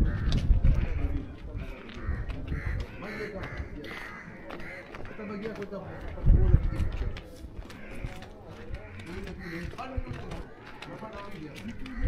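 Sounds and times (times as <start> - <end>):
crows cawing: 0.0 - 12.0.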